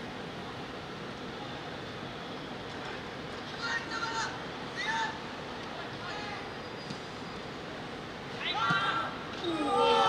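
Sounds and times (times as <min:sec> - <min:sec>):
footballers shouting: 0:08.4 - 0:10.0.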